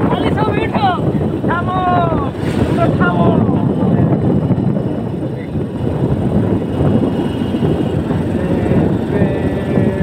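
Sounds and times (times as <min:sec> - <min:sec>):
motorcycle engine rumble: 0:00.0 - 0:10.0
wind rushing over microphone: 0:00.0 - 0:10.0.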